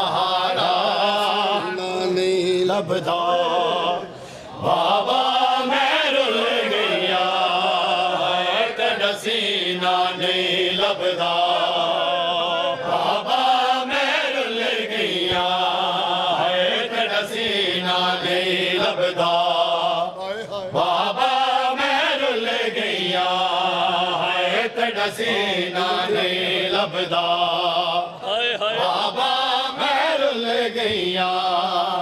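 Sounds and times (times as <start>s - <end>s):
men chanting over loudspeakers: 0.0s - 32.0s.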